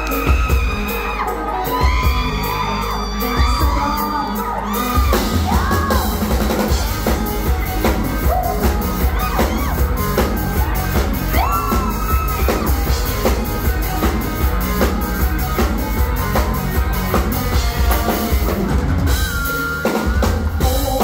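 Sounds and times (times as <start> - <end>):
yells and whoops: 0.0 - 6.2, 8.1 - 13.0
person singing: 0.0 - 6.4, 19.9 - 21.0
live band playing dance song: 0.0 - 21.0.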